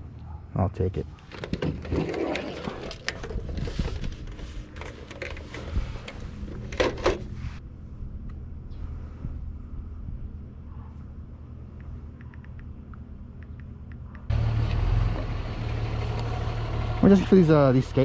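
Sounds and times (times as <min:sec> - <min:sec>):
steady low hum: 0:02.7 - 0:18.0.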